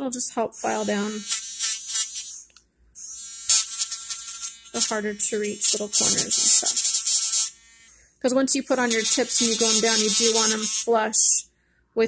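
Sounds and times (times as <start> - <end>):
electric nail drill whining: 0.6 - 8.0, 8.6 - 11.2.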